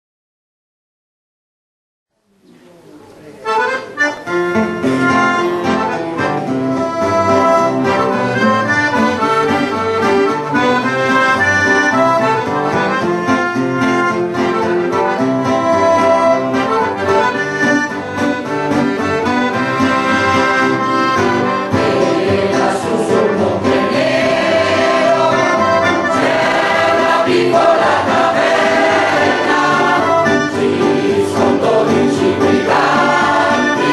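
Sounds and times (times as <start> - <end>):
accordion playing tune: 3.4 - 33.9.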